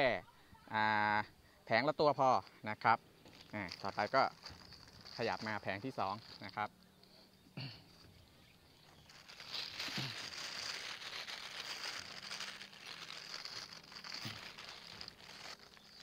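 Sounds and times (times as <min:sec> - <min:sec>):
plastic film crinkling: 0:02.2 - 0:16.0.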